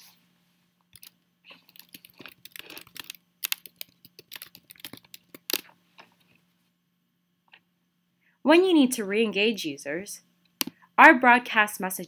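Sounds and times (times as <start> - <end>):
computer keyboard typing: 1.0 - 5.6.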